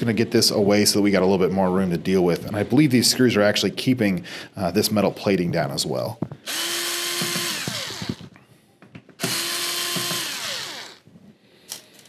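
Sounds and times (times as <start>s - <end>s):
electric screw gun whining: 6.4s - 8.4s, 9.2s - 11.1s.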